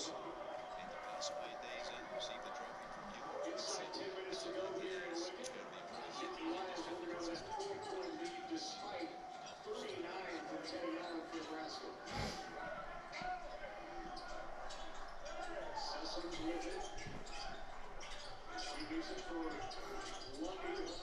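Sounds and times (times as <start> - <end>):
crowd noise: 0.0 - 21.0
voices: 0.0 - 21.0.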